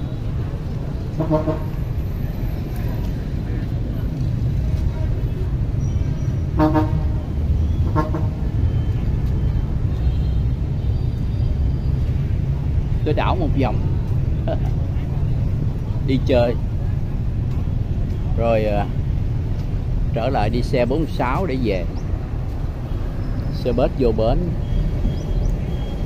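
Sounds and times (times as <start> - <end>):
engines and traffic rumbling: 0.0 - 26.0
vehicle horns tooting: 1.1 - 2.2, 6.4 - 8.9, 9.9 - 11.2.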